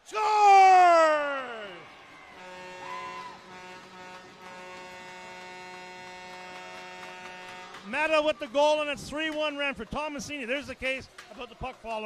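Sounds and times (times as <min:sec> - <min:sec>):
commentator shouting: 0:00.0 - 0:01.9
buzzing goal horn: 0:02.3 - 0:07.9.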